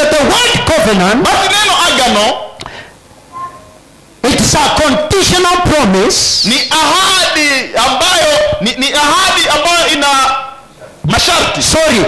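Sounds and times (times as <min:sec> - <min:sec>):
man speaking into a microphone: 0:00.0 - 0:02.6, 0:04.2 - 0:12.0.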